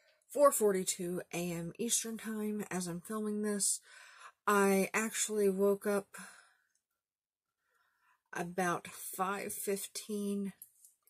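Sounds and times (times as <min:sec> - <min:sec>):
woman breathing: 0:03.8 - 0:04.4, 0:06.2 - 0:06.8, 0:07.6 - 0:08.3.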